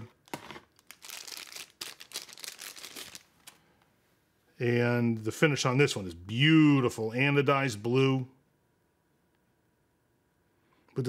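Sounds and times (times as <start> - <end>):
packaging crinkling: 0.2 - 3.7.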